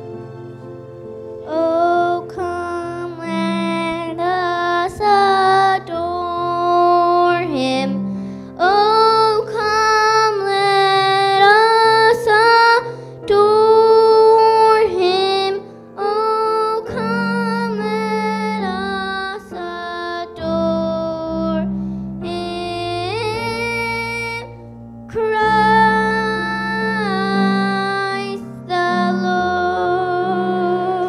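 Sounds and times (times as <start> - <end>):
instrumental accompaniment: 0.0 - 31.0
high voice singing slow song: 22.2 - 31.0.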